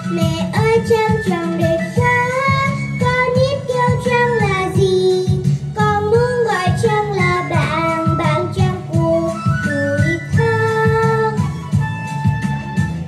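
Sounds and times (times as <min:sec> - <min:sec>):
girl singing into microphone: 0:00.0 - 0:11.9
instrumental accompaniment: 0:00.0 - 0:13.0.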